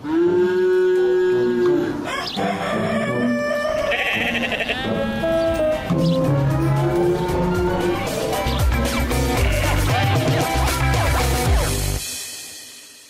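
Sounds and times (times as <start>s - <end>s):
background music: 1.4s - 13.0s
sheep bleating: 3.7s - 5.6s, 9.2s - 10.4s.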